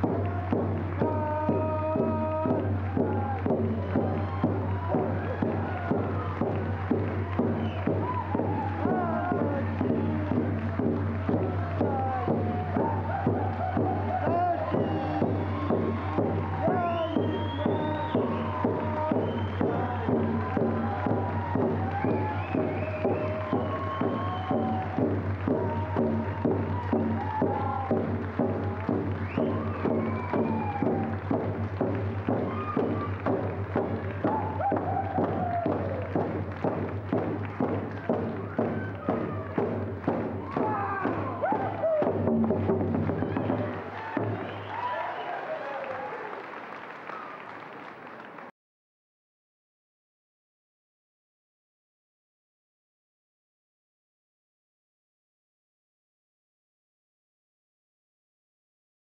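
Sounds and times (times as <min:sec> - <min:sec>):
frame drums beating: 0:00.0 - 0:44.9.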